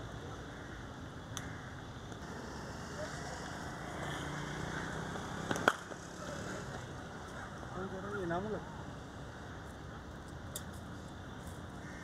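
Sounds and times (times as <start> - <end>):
cricket ball striking bat: 5.5 - 6.0.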